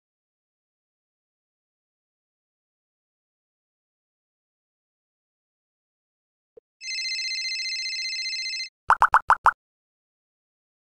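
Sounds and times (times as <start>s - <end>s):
quick plopping blips: 8.9s - 9.6s.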